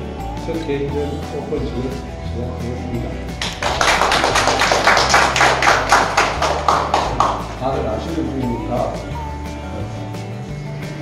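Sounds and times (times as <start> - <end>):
background music: 0.0 - 11.0
people applauding: 3.4 - 7.8.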